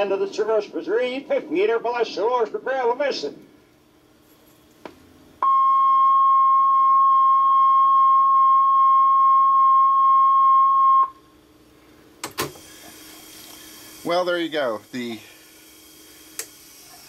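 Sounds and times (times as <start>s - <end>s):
steady single-pitched tone: 5.4s - 11.3s.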